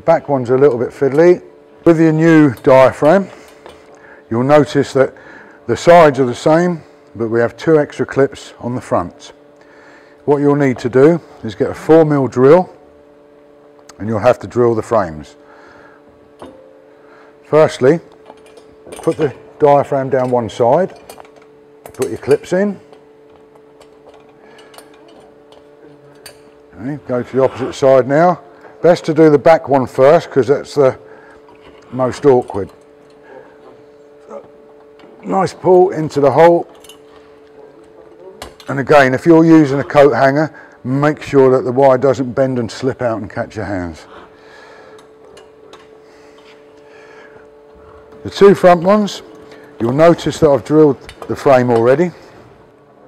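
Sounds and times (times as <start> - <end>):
steady hum: 0.0 - 53.0.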